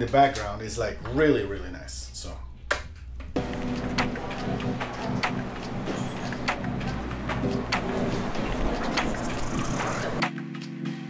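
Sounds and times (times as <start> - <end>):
low machinery hum: 2.3 - 10.2.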